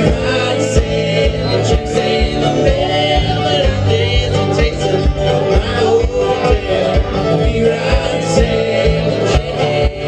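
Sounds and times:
banjo: 0.0s - 10.0s.

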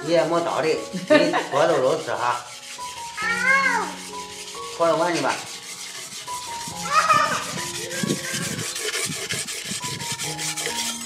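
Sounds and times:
cleaver scraping on stone: 0.2s - 11.0s
toddler vocal call: 3.2s - 4.1s, 6.7s - 8.6s.

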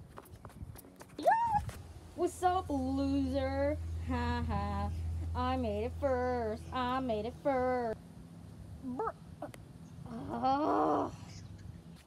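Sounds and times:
running footsteps on pavement: 0.0s - 1.9s
playful voiced squeal: 1.2s - 1.7s, 8.8s - 9.2s.

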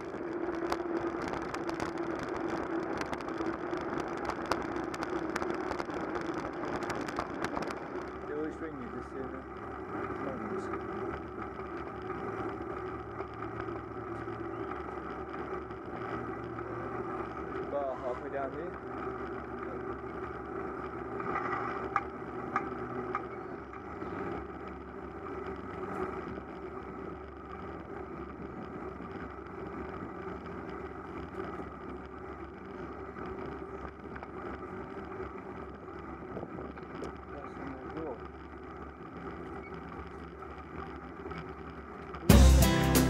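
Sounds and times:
bicycle tyre and road noise: 0.0s - 43.0s.

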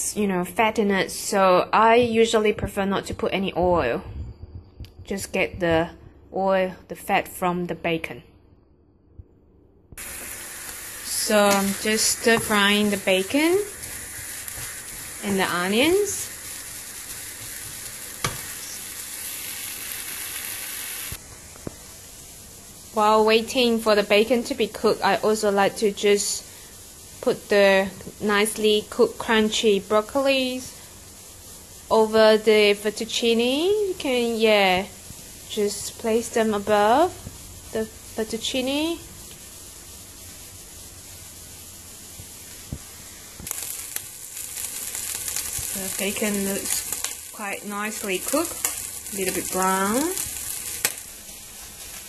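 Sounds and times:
bacon and onion sizzling: 10.0s - 52.0s
faint hiss: 10.0s - 52.0s.

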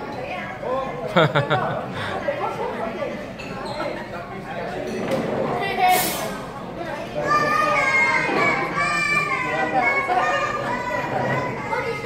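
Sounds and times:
young boys talking and exclaiming: 0.0s - 12.0s.

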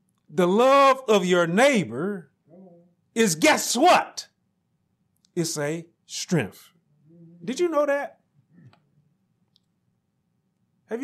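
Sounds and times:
man speaking: 3.2s - 4.3s, 5.3s - 6.7s, 7.4s - 8.2s.

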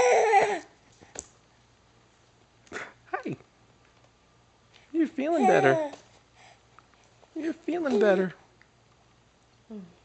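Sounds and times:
baby squealing: 5.4s - 5.9s.

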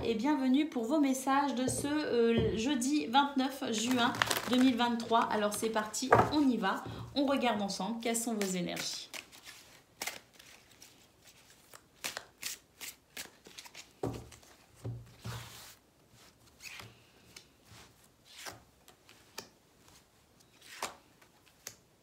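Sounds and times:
cards shuffling and rustling: 3.8s - 6.6s, 8.2s - 15.8s, 16.5s - 21.8s.

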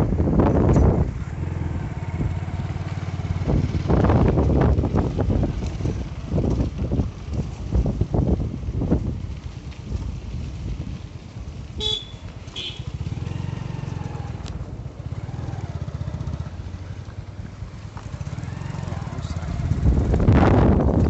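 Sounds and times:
motorcycle engine on dirt road: 0.0s - 21.0s
horn short beeps: 11.8s - 12.9s.

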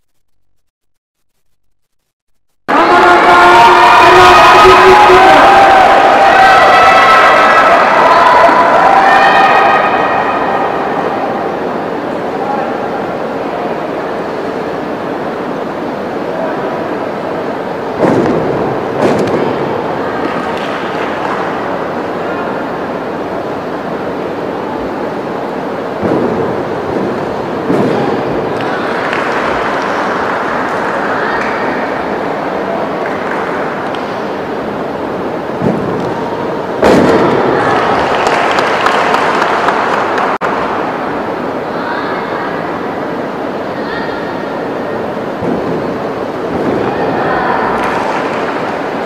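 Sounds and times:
echoing indoor arena din: 2.7s - 49.0s.

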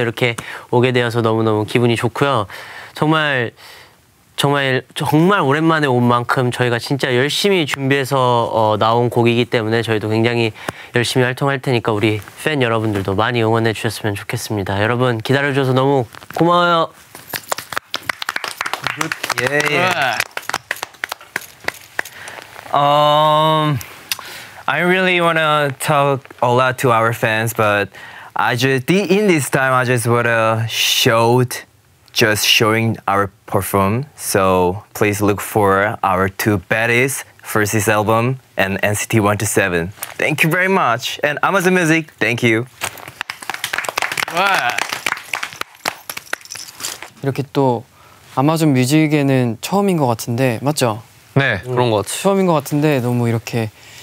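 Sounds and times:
people clapping: 17.2s - 22.5s, 42.9s - 46.7s.

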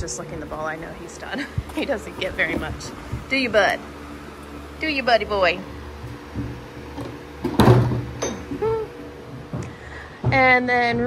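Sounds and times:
electric fans humming: 0.0s - 11.0s.

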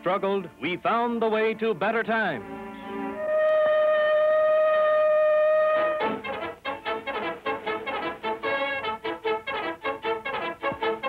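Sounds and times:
steam whistle blowing: 2.5s - 7.2s.

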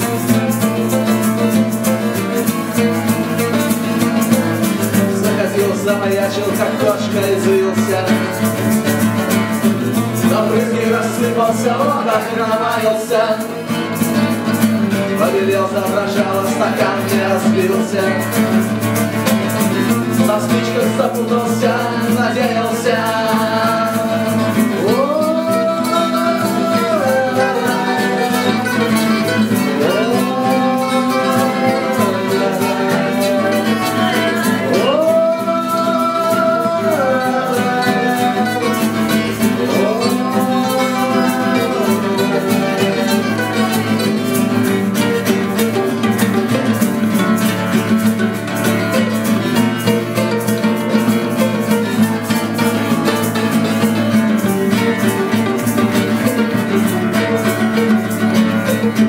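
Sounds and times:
acoustic guitar strumming: 0.0s - 59.0s
lap guitar sliding melody: 0.0s - 59.0s
mandolin: 0.0s - 59.0s.

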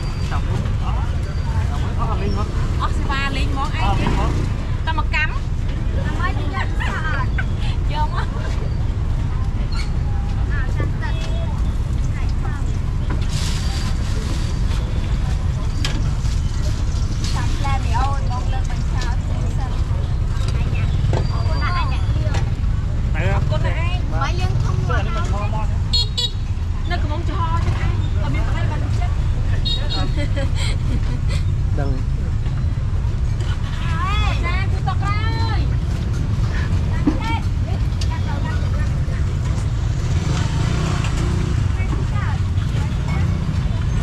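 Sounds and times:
people talking: 0.0s - 22.6s, 26.8s - 30.7s, 33.8s - 35.8s, 36.5s - 39.7s, 41.6s - 44.0s
traffic rumble: 0.0s - 44.0s
vehicle horn toots: 25.9s - 26.4s.

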